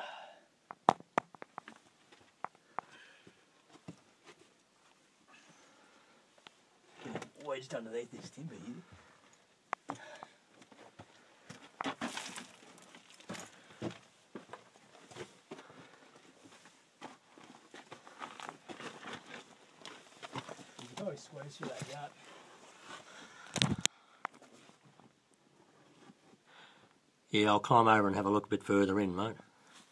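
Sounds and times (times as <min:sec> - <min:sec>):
crawling over rock and stones: 0:10.9 - 0:14.1, 0:17.1 - 0:23.8.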